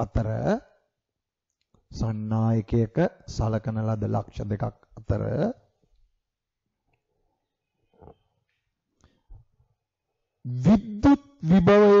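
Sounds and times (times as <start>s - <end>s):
man speaking: 0.0s - 0.7s, 1.9s - 5.7s, 10.5s - 12.0s.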